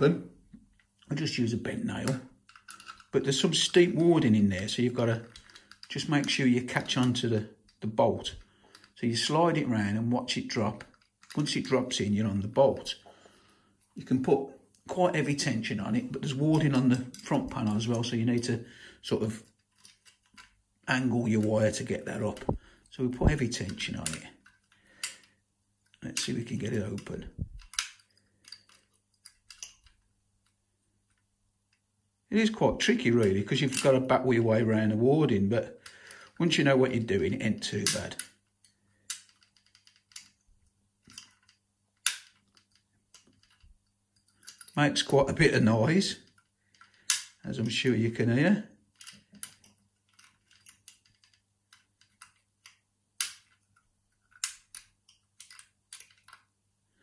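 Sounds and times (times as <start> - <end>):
lock picking metallic clicks: 2.0 - 4.0, 4.6 - 9.0, 10.7 - 12.0, 16.0 - 18.6, 19.3 - 20.6, 21.4 - 31.2, 33.2 - 34.2, 37.4 - 45.4, 46.2 - 47.8, 48.9 - 56.5.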